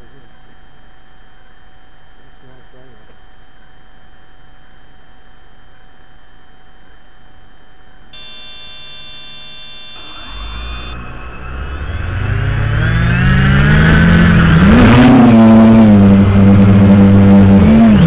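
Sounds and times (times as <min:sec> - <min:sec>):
quadcopter motors whining: 0:08.2 - 0:15.0.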